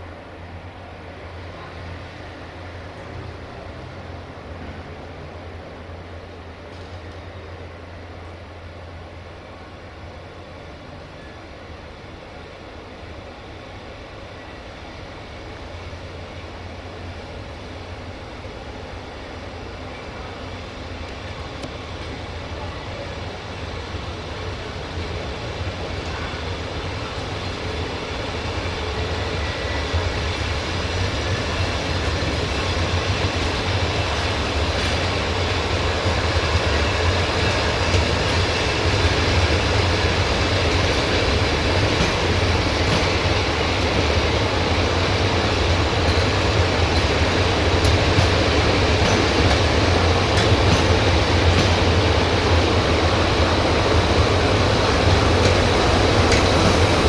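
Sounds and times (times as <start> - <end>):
train coaches rolling on rails: 0.0 - 57.0.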